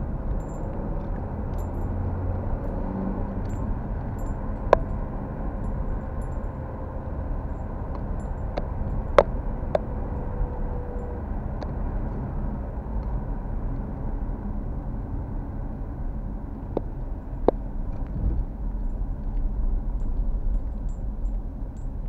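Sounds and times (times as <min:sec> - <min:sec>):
car engine and tyre rumble: 0:00.0 - 0:22.0.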